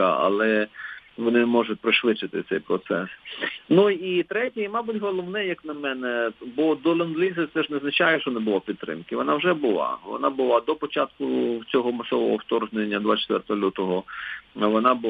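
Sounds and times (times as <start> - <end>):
man talking: 0.0 - 15.0.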